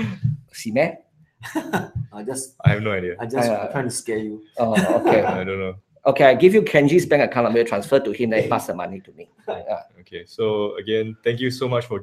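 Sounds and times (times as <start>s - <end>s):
men's voices: 0.0s - 0.7s, 1.4s - 12.0s.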